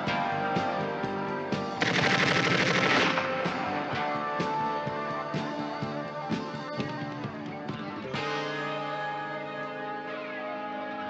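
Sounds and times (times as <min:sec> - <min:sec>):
guitar-driven film score: 0:00.0 - 0:11.0
automatic rifle fire: 0:01.8 - 0:03.7.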